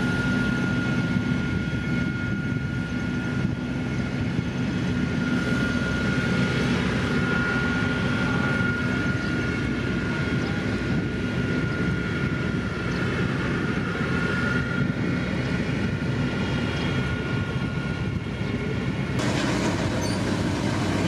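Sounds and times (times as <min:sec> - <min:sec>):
diesel engines rumbling: 0:06.2 - 0:21.0
high whine: 0:19.2 - 0:21.0.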